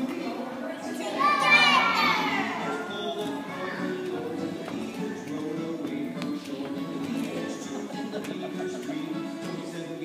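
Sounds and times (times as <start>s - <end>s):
young children's voices: 0.0s - 4.4s.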